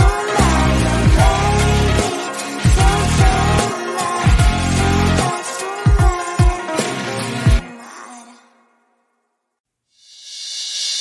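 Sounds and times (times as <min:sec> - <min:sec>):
background music: 0:00.0 - 0:09.2.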